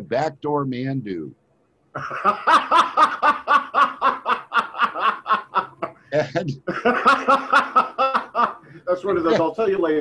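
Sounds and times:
man laughing: 2.0 - 8.6.

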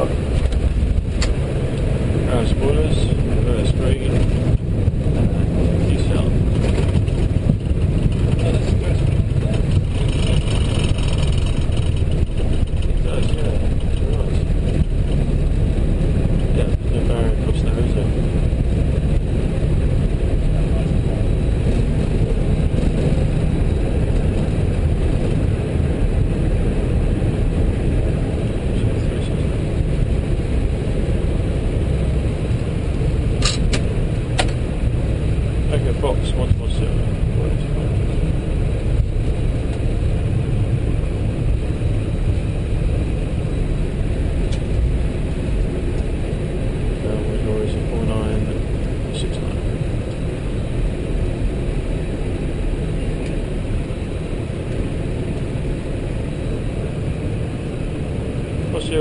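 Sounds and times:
aircraft cockpit rumble: 0.0 - 59.0.

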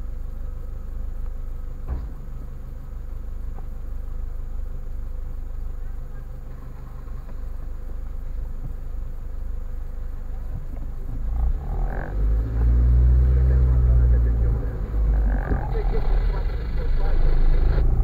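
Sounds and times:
car engine idling: 0.0 - 18.0
car engine revving pulling away: 11.1 - 18.0.

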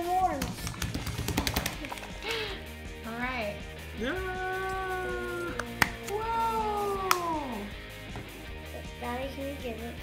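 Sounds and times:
background music: 0.0 - 10.0
hand patting slimy gel: 0.3 - 2.4, 4.6 - 7.5.

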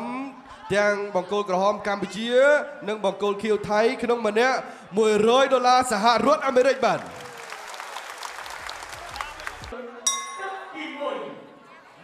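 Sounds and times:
applause: 6.8 - 9.8.

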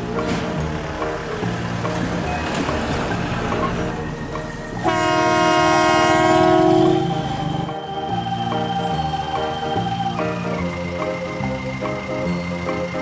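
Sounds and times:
music with steady beat: 0.0 - 13.0
loud horn blast: 4.8 - 7.7.

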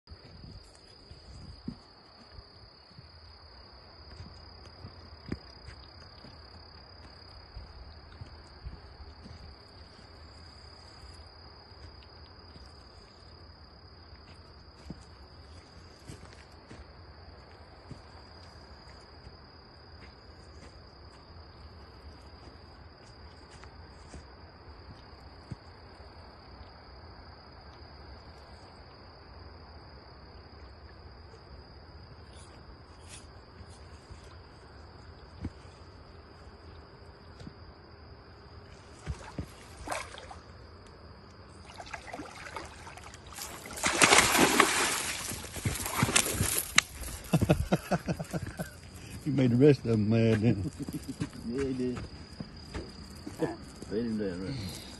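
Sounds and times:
night insects chorus: 0.0 - 54.9
water splash: 39.1 - 40.4, 41.6 - 46.8.

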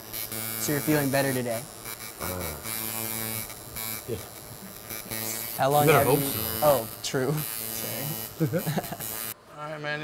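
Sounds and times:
tattoo machine buzzing: 0.0 - 9.4.

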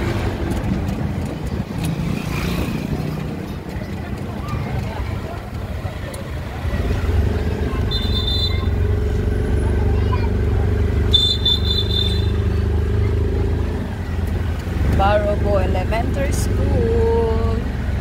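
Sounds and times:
motorcycle engine rumbling: 0.0 - 18.0.

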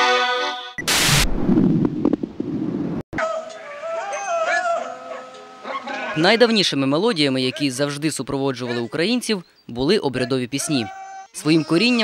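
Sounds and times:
low rumble with crackles: 1.0 - 3.0.

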